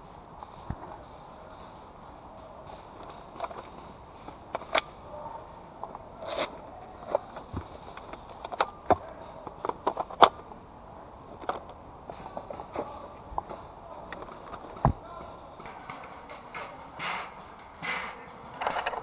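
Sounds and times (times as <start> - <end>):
gear clicking and knocking: 15.6 - 19.0.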